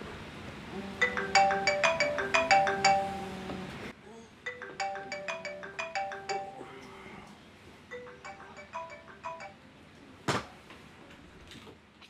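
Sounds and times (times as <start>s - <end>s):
phone alarm ringtone: 1.0s - 3.4s, 4.5s - 6.6s, 7.9s - 9.6s.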